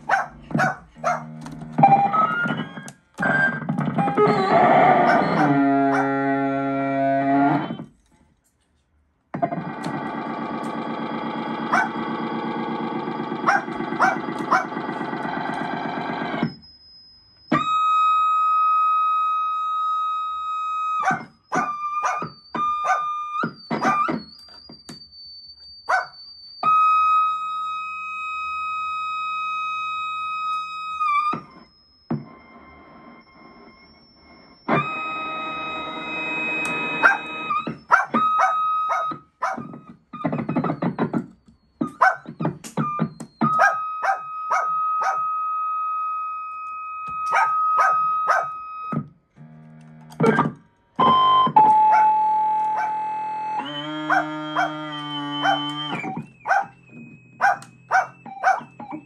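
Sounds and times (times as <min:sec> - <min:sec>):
dense buzzy electronic chord: 0:03.2 - 0:07.8, 0:09.4 - 0:16.5
long steady electronic beeps: 0:09.4 - 0:59.0.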